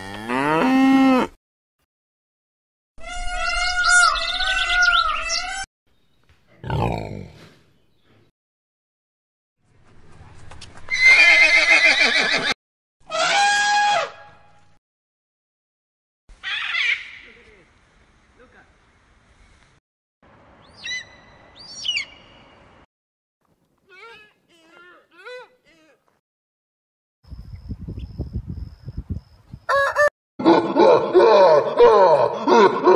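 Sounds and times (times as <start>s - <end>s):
horse neighing: 11.0s - 12.6s
rooster crowing: 29.7s - 30.1s.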